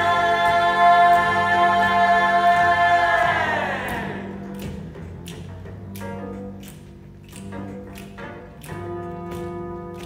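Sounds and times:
youth choir singing held chord: 0.0 - 4.3.

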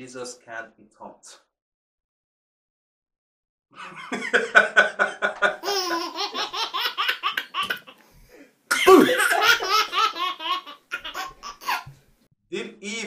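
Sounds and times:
man laughing heartily: 3.8 - 6.2, 8.7 - 10.2
baby laughing: 4.8 - 8.0, 8.7 - 11.9.

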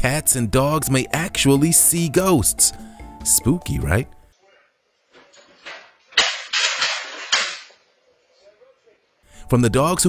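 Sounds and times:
object clattering on floor: 5.1 - 7.8.

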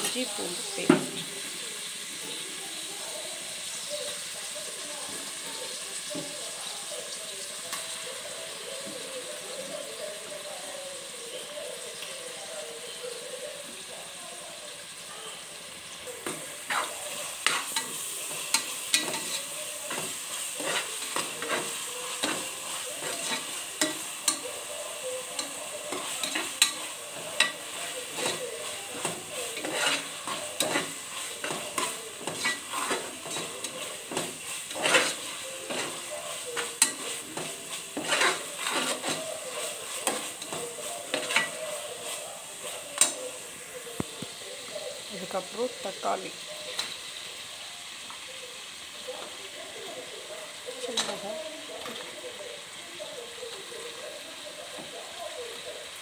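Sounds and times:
food sizzling in a pressure cooker: 0.0 - 56.0
spoon scraping and knocking pot: 27.4 - 36.0, 36.6 - 41.6.

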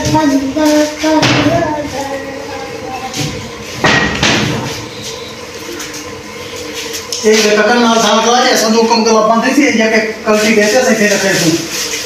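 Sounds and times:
steady mechanical rumble: 0.0 - 12.0.

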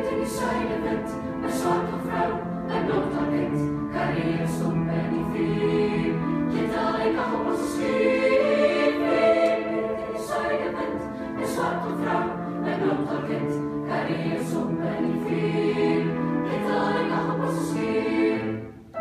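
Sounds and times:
choir singing sustained chords: 0.0 - 19.0.

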